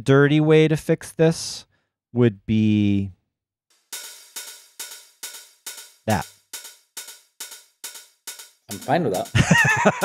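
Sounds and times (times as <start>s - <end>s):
hi-hat hits: 3.8s - 10.0s.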